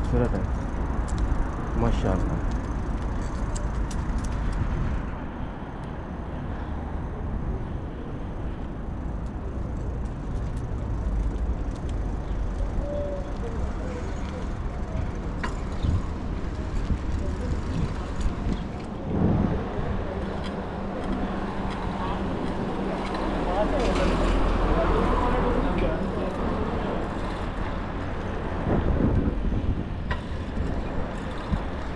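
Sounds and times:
city traffic rumble: 0.0 - 31.9.

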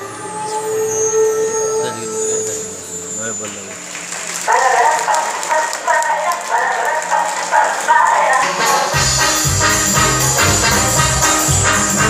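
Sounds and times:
audience applauding and cheering: 3.1 - 12.0.

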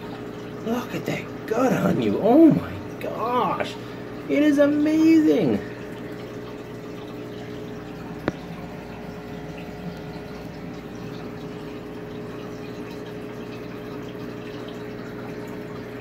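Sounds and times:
aquarium filter pump humming: 0.0 - 16.0.

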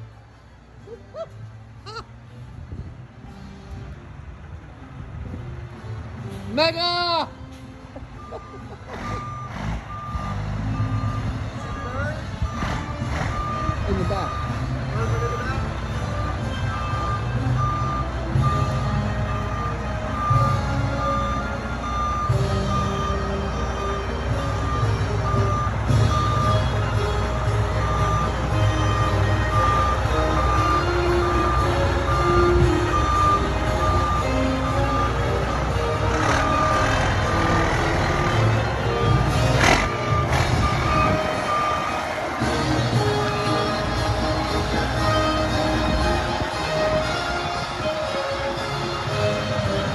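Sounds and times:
truck engine running: 7.4 - 49.9
reversing alarm beeping: 8.2 - 46.0.

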